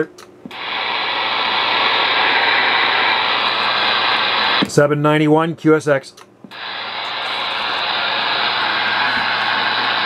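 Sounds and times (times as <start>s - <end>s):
radio static hiss: 0.6s - 4.8s, 6.5s - 10.0s.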